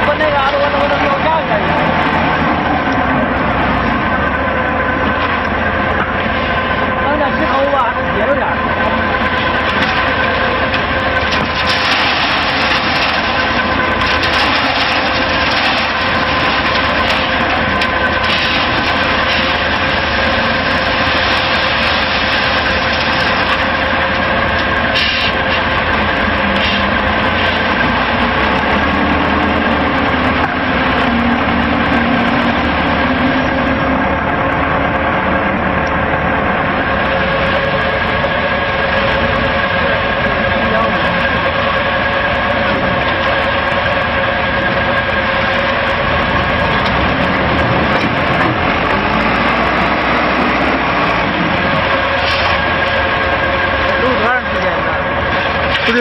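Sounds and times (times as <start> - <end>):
concrete pump diesel engine: 0.0 - 56.0
drum concrete mixer: 0.0 - 56.0.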